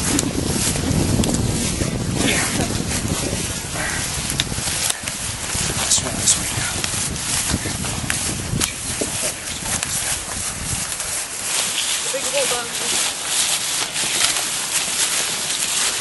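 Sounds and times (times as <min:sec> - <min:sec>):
wind buffeting microphone: 0:00.0 - 0:14.4
footsteps shuffling through dry leaves: 0:00.0 - 0:16.0.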